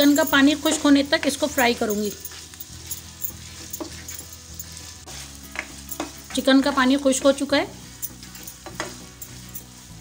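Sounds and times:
chicken sizzling in a wok: 0:00.0 - 0:10.0
light background music: 0:00.0 - 0:10.0.

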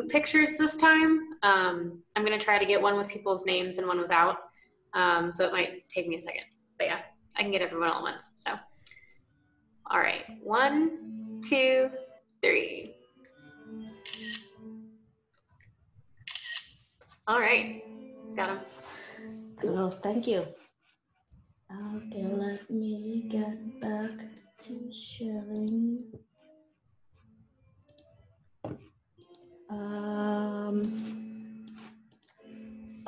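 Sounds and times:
faint background music: 0:00.0 - 0:33.0
camera shutter sounds: 0:14.0 - 0:14.5, 0:16.3 - 0:16.7.

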